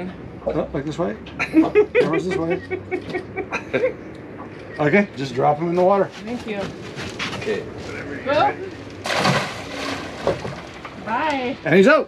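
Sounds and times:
water movement: 6.8s - 11.8s
fish splashing into water: 9.0s - 11.1s.

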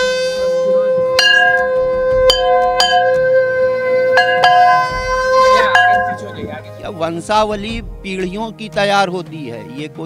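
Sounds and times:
conch shell blown: 0.0s - 6.5s
bell struck ringing: 1.2s - 6.6s.

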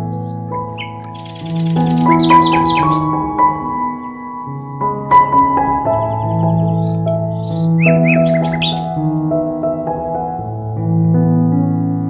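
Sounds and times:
calm keyboard music: 0.0s - 12.0s
bird chirps: 0.1s - 3.3s, 5.9s - 9.0s.

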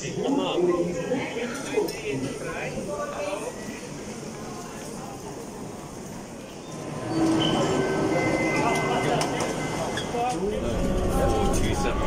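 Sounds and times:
crowd chatter: 0.0s - 12.0s
electric train whine: 6.7s - 12.0s.

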